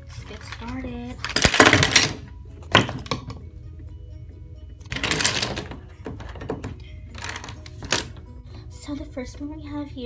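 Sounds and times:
stationery clattering across a desk: 4.9 - 8.2.

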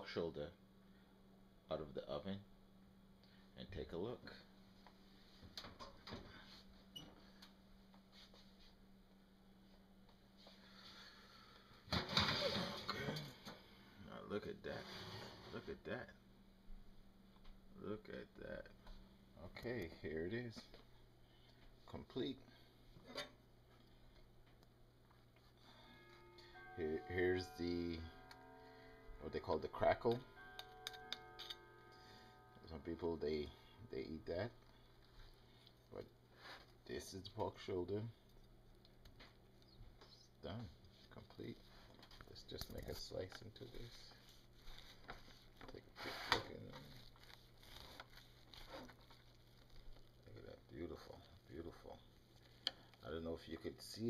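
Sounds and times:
faint low hum: 0.0 - 54.0
scraping in a pan: 14.7 - 15.6.

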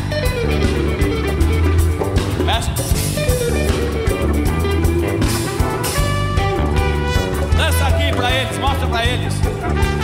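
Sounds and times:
live band playing gospel music: 0.0 - 10.0.

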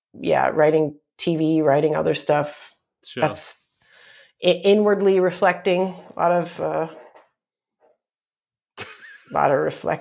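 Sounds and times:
person laughing: 8.8 - 9.6.

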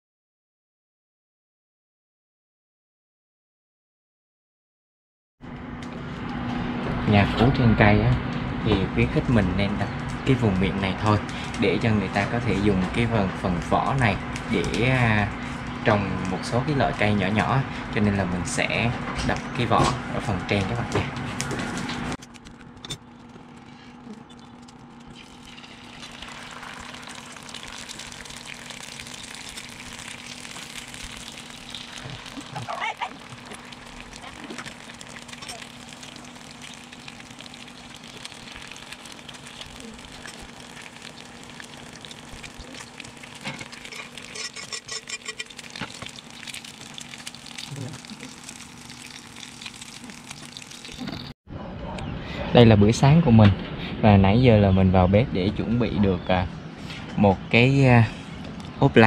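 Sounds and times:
faint crackles: 21.4 - 51.3
oil hissing in a frying pan: 25.2 - 32.6, 33.2 - 44.3.

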